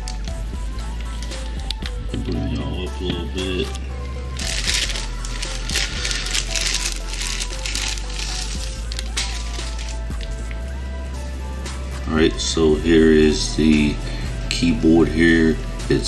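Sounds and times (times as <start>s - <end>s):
background music with bass: 0.0s - 16.0s
plastic bag crinkling: 0.8s - 10.6s.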